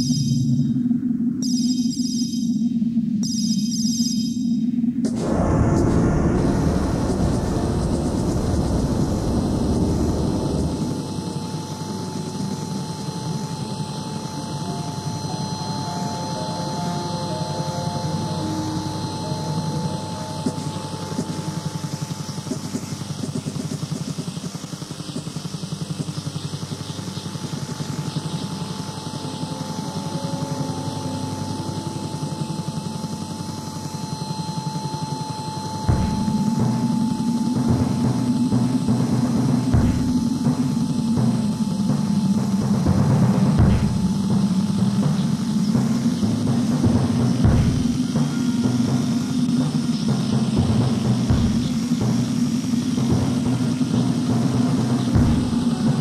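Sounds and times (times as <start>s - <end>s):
steady high tone: 0.0s - 23.1s, 27.5s - 56.0s
pulsing low electronic drone: 0.0s - 56.0s.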